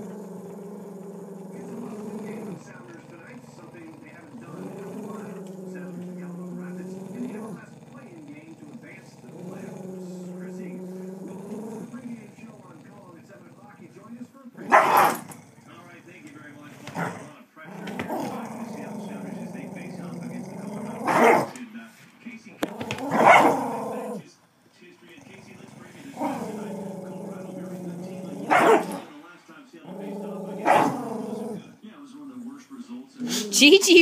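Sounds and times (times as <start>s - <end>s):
dogs growling: 0.0s - 21.8s, 22.4s - 31.8s, 33.0s - 34.0s
dog barking sharply: 14.7s - 15.2s.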